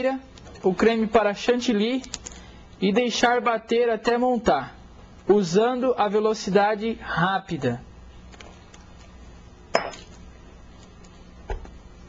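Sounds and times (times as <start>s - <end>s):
kitchenware clinking: 9.7s - 10.2s.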